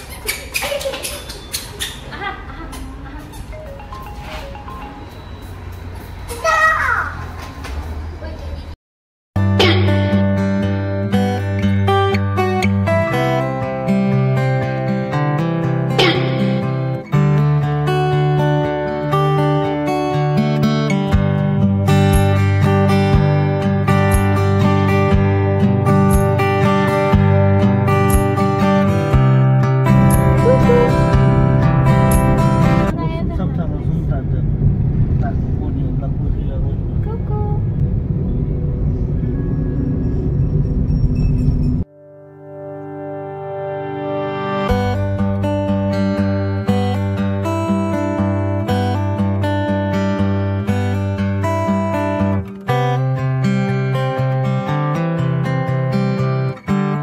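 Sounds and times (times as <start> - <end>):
plucked guitar music: 9.4 - 33.2, 41.9 - 57.0
road noise inside car: 32.9 - 41.8.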